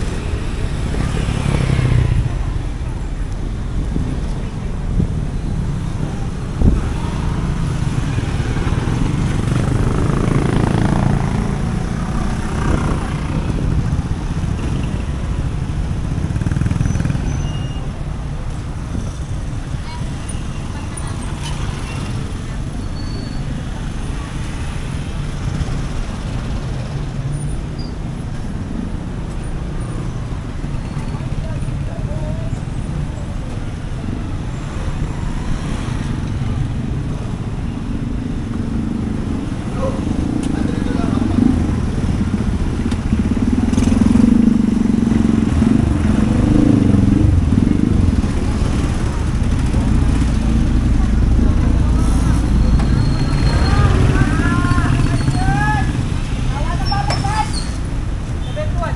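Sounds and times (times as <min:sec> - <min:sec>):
cars passing: 0:00.0 - 0:58.9
motorcycle tricycles passing: 0:00.0 - 0:58.9.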